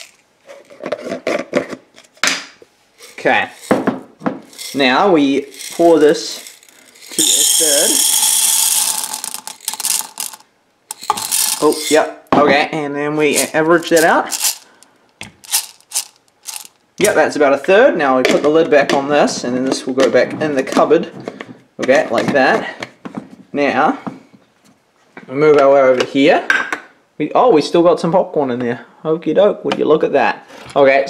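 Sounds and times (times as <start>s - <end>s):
popcorn kernels rattling in a cup: 0.0s - 0.2s, 3.0s - 3.8s, 4.5s - 12.1s, 13.2s - 14.8s, 15.4s - 17.2s.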